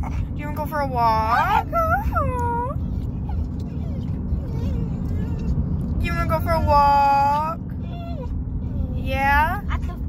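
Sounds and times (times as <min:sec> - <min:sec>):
low rumble of moving car: 0:00.0 - 0:10.0
dog whining: 0:01.3 - 0:05.9, 0:07.7 - 0:09.1.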